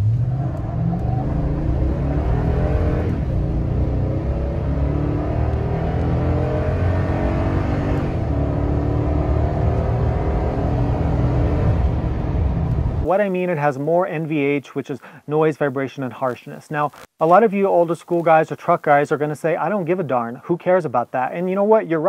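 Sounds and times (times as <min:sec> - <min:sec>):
engine accelerating: 0:00.0 - 0:13.0
transmission shifting gears: 0:00.0 - 0:13.1.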